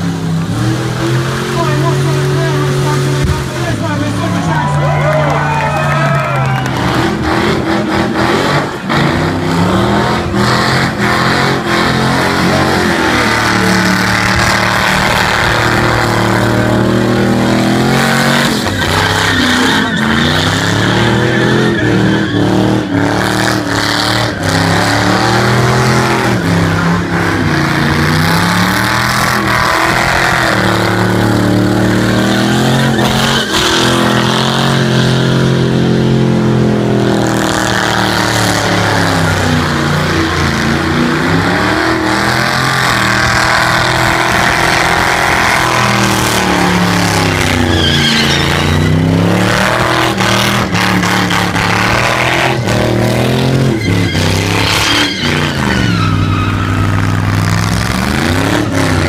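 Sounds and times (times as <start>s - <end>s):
car engine revving hard: 0.0s - 59.0s.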